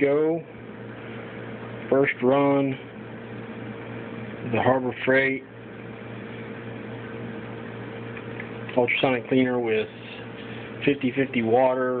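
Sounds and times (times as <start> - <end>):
ultrasonic cleaner buzzing hum: 0.0 - 12.0.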